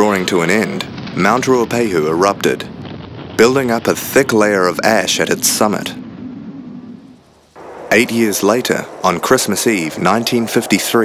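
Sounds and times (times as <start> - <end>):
dull steady hiss: 0.0 - 11.0
noisy rumble: 0.0 - 11.0.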